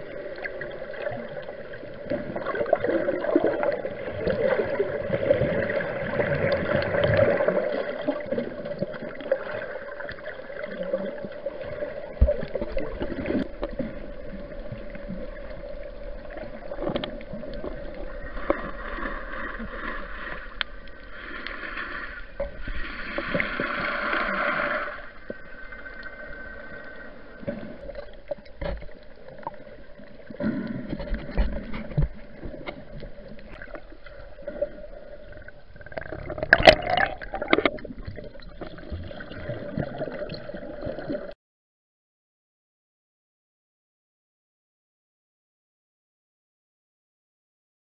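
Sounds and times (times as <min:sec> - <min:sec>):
water swishing and gurgling: 0:00.0 - 0:41.4.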